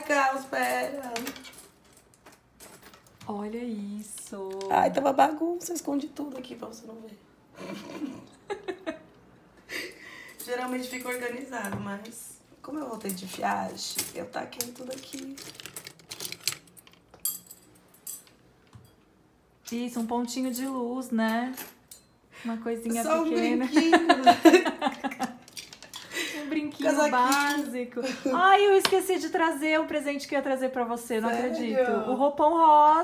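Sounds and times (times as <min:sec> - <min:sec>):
metal bangles clinking: 0:00.2 - 0:03.0, 0:13.0 - 0:19.0.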